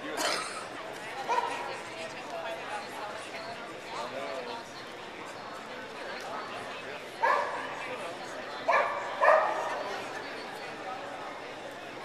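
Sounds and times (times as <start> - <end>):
crowd chatter: 0.0 - 12.0
dog barking: 7.2 - 7.6, 8.7 - 9.6.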